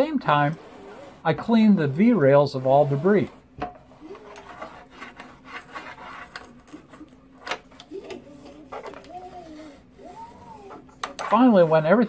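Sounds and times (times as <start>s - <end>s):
scratchy rubbing and scraping: 0.0s - 12.0s.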